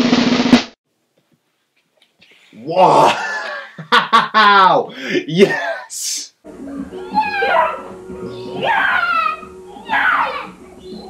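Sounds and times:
children shrieking: 6.9 - 11.0.

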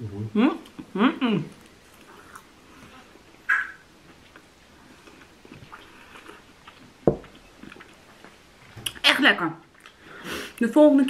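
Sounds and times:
person chewing: 0.6 - 9.0.

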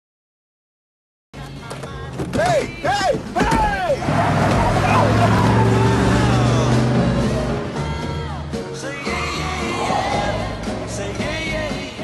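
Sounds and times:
tyre noise on road: 1.5 - 8.3
truck engine running: 3.9 - 8.8.

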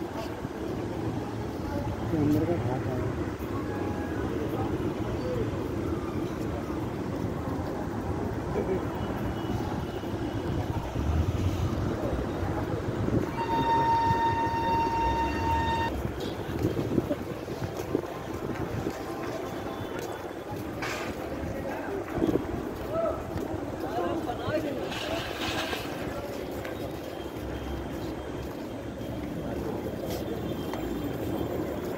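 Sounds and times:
street traffic rumble: 0.0 - 31.9
vehicle horn: 13.2 - 15.9.

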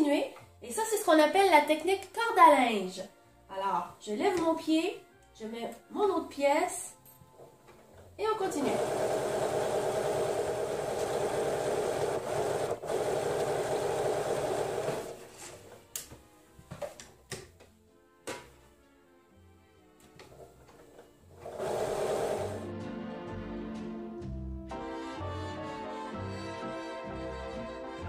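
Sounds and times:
electric sewing machine running: 8.5 - 15.2, 21.4 - 22.7.

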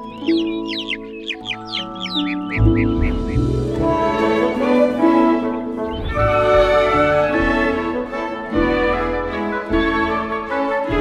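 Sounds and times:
baby birds cheeping: 0.0 - 4.2, 5.4 - 7.1
gentle music of held notes: 0.0 - 11.0.

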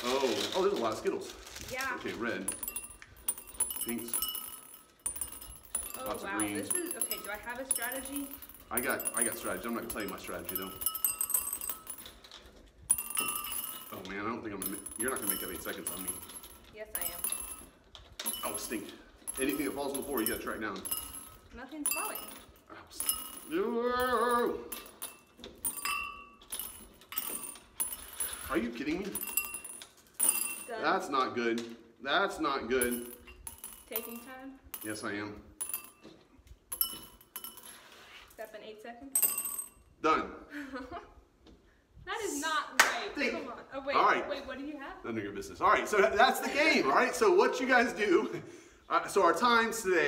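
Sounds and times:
candies clinking in glass cups: 0.0 - 30.8.

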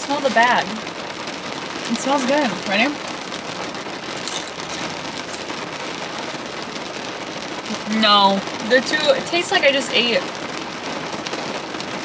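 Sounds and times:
rain on car roof and windows: 0.0 - 12.0
crisp crackles: 0.8 - 7.9.

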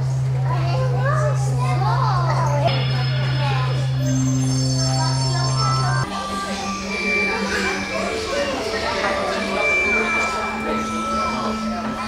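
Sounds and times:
children talking and exclaiming: 0.0 - 12.0.

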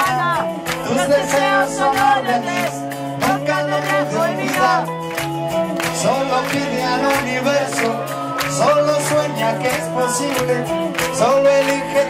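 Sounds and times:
man singing or shouting: 0.0 - 4.9, 6.0 - 12.0
live band playing loud music: 0.0 - 12.0.

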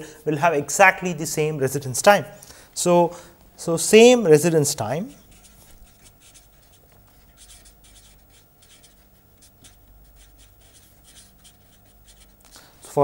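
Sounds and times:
marker pen writing on paper: 4.4 - 12.6.

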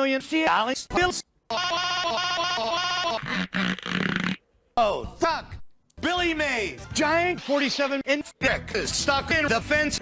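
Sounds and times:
wavering bleat-like vocal sound: 1.5 - 4.4.

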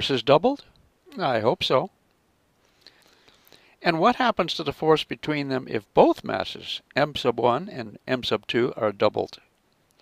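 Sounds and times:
man speaking: 0.0 - 1.9, 3.8 - 9.5
faint breath drawn in: 2.6 - 3.8.

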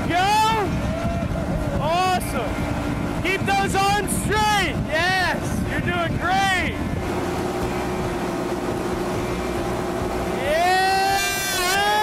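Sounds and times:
boat engine humming: 0.0 - 12.0
water rushing: 0.0 - 12.0
wind: 0.0 - 12.0.

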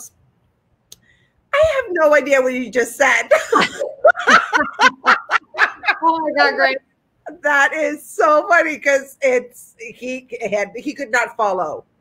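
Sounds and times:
person speaking: 1.6 - 8.9
women laughing: 3.3 - 6.8.

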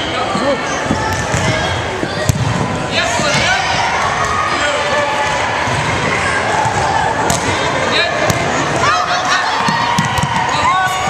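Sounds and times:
voices in a gym: 0.0 - 11.0.

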